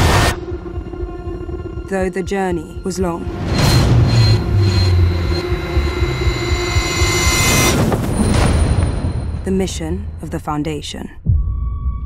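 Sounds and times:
high whining tones: 3.5s - 8.0s.

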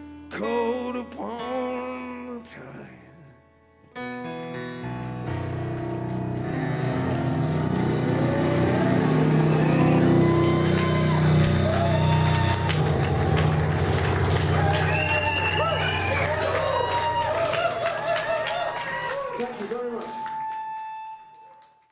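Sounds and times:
blues band playing: 4.9s - 18.1s
wavering high lead notes: 5.2s - 17.5s.

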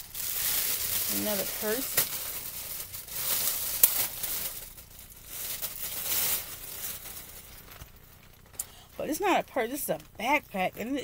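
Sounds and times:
plastic packaging crinkling: 0.0s - 11.0s.

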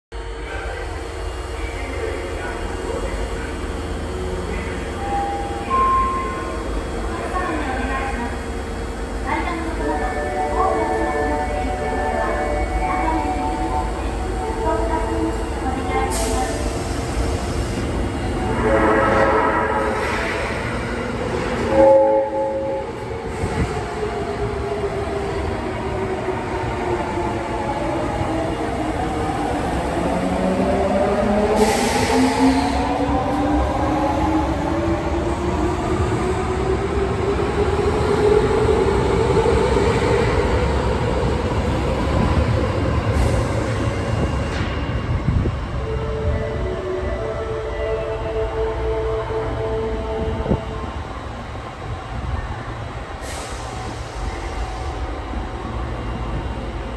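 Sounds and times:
subway train humming: 0.1s - 56.9s
train horn blast: 18.4s - 20.0s, 21.6s - 23.0s.

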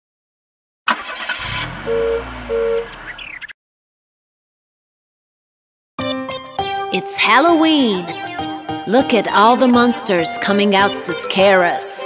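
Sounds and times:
cartoon car engine rumble: 0.9s - 3.5s
two-tone car horn beep: 1.6s - 2.9s.

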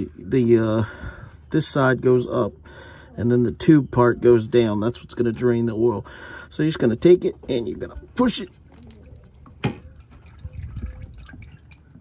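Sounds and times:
oil dripping into a pan: 9.2s - 12.0s.

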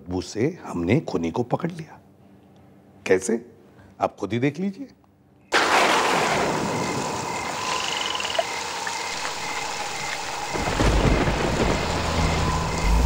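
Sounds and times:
rain falling: 5.6s - 13.0s.

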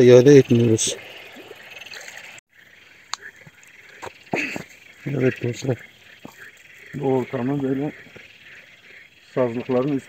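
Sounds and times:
frogs croaking: 0.0s - 10.0s.

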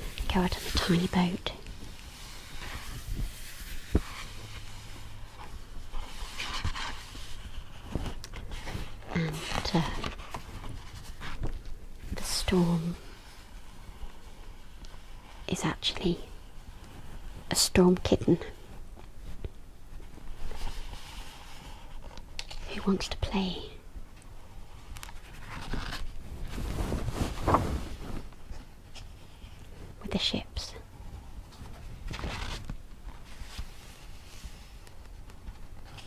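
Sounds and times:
hand brushing paper page: 0.0s - 11.4s, 25.1s - 28.4s.

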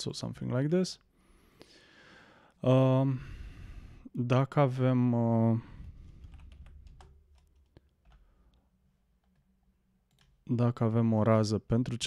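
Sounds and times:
faint keyboard typing: 5.7s - 10.5s.

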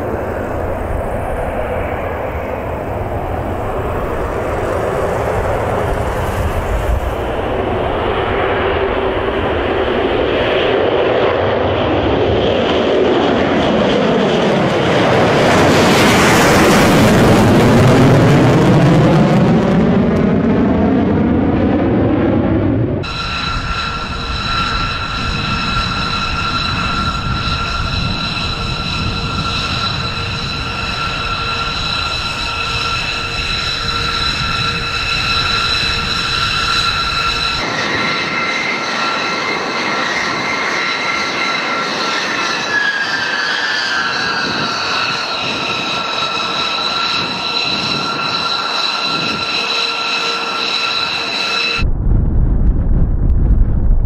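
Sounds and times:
jet engine deep roar: 0.0s - 54.0s
jet engine whine: 0.0s - 54.0s.

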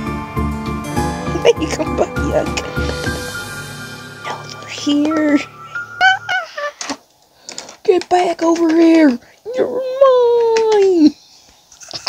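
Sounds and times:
person holding long note: 0.0s - 7.0s
plastic toys tapping on wood: 7.5s - 9.2s, 10.4s - 11.1s.

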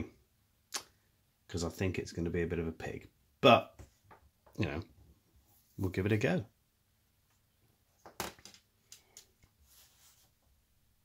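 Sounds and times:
soft rubbing: 9.4s - 10.6s.

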